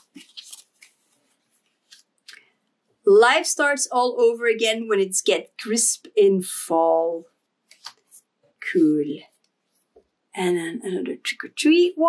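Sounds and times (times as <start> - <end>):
paper cards rustling: 0.0 - 2.1.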